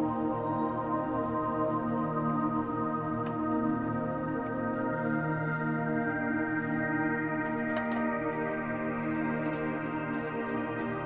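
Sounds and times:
sustained tone background music: 0:00.0 - 0:11.0.

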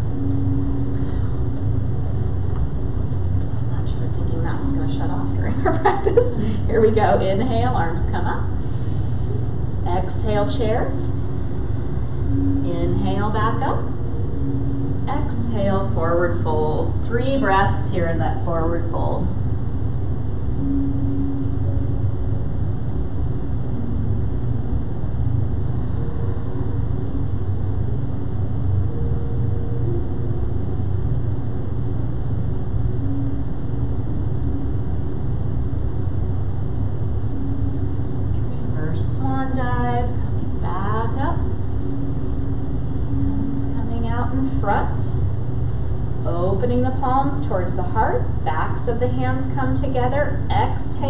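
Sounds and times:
low machine rumble: 0:00.0 - 0:51.0
woman speaking: 0:03.3 - 0:08.5, 0:09.9 - 0:11.0, 0:12.6 - 0:13.9, 0:15.1 - 0:19.3, 0:38.5 - 0:41.5, 0:43.6 - 0:45.2, 0:46.2 - 0:51.0.

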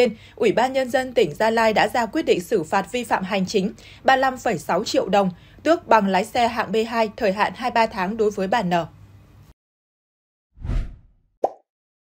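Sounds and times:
short swishing swell: 0:10.6 - 0:11.2.

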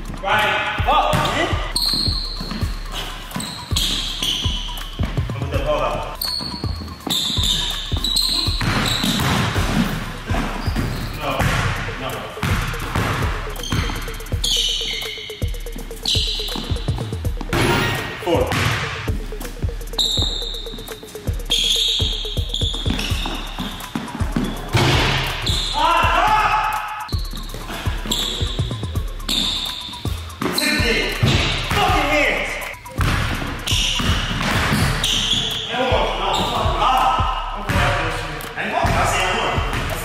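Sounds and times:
basketball bouncing on hardwood floor: 0:07.3 - 0:11.8, 0:12.4 - 0:14.0, 0:22.0 - 0:25.7, 0:33.0 - 0:35.5.

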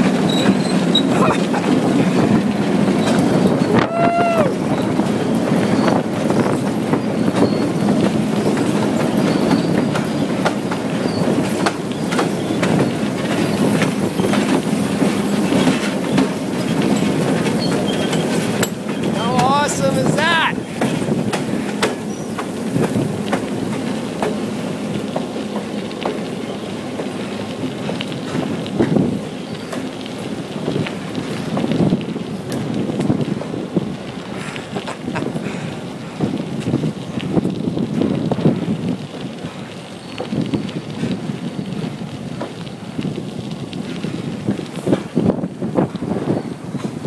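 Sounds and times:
diesel locomotive running: 0:00.0 - 0:47.0
wind buffeting microphone: 0:00.0 - 0:47.0.

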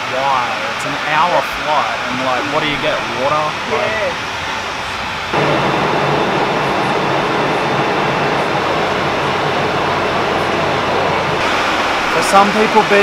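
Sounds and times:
airliner cabin engine hum: 0:00.0 - 0:13.0
air rushing: 0:01.9 - 0:13.0.

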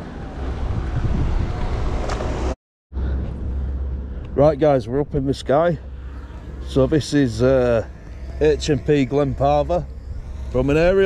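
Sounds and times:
wind buffeting microphone: 0:00.0 - 0:02.5, 0:08.4 - 0:11.0.

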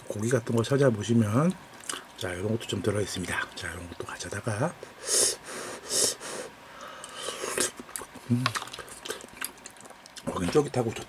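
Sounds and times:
chewing with wet clicks: 0:01.8 - 0:02.2, 0:07.0 - 0:11.0
person slurping soup: 0:05.1 - 0:09.3
person murmuring: 0:08.2 - 0:08.6.

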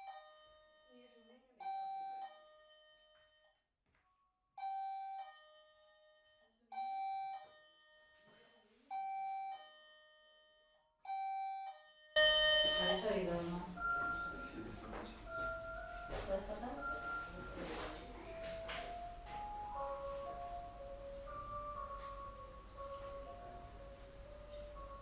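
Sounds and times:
two-note doorbell chime: 0:09.0 - 0:25.0.

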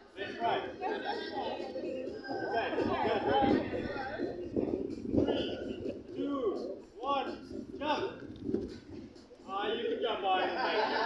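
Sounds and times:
people calling out: 0:00.2 - 0:04.4.

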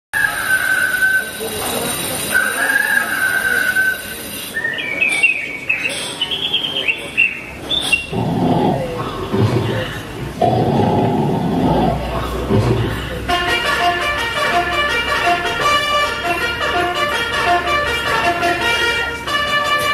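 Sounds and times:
low rough pulsing sound: 0:08.1 - 0:14.1.

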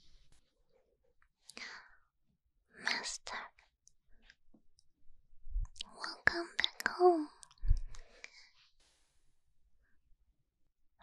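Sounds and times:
soft whispering: 0:01.4 - 0:02.1, 0:02.7 - 0:04.4, 0:05.6 - 0:08.7.

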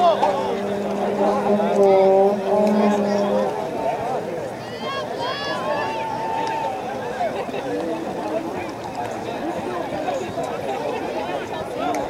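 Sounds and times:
steady low drone: 0:00.0 - 0:04.5
spectators and players shouting: 0:00.0 - 0:07.5.

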